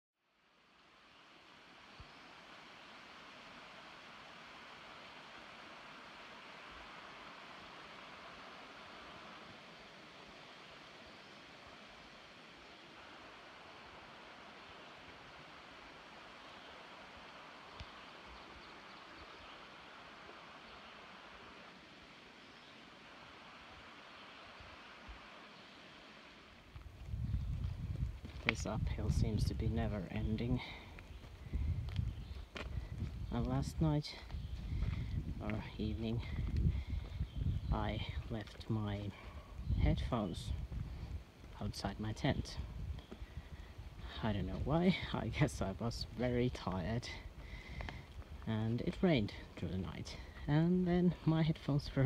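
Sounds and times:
rocky creek rushing: 0.4s - 52.0s
low rumbling on microphone: 26.8s - 50.2s.

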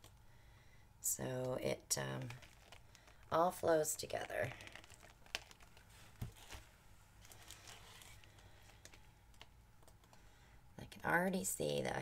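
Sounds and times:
faint clicks and taps: 7.2s - 10.2s.

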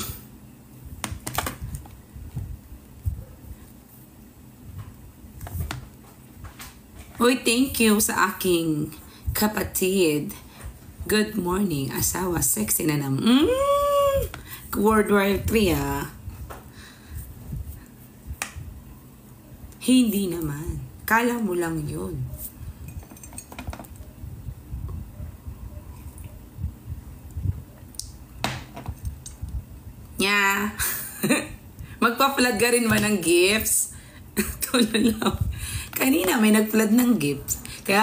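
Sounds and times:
woman speaking: 7.2s - 10.4s, 11.0s - 16.2s, 19.8s - 22.5s, 30.2s - 30.9s, 32.0s - 38.0s.

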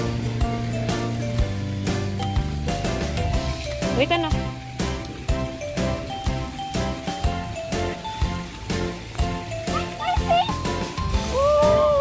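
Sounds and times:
music with steady beat: 0.0s - 12.0s.

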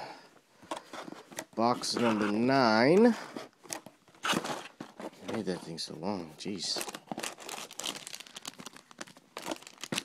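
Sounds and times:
packaging crinkling: 6.5s - 10.0s.

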